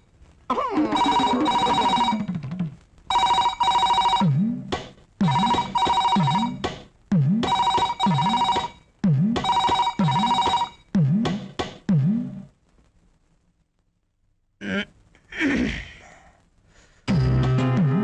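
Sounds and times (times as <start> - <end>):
telephone ringing: 0.9 - 2.4, 3.1 - 4.4, 5.2 - 6.6, 7.5 - 10.9.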